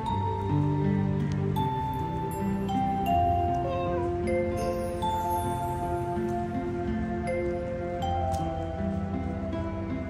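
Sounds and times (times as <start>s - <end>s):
soft background music: 0.0s - 10.0s
cat meowing: 3.6s - 4.2s.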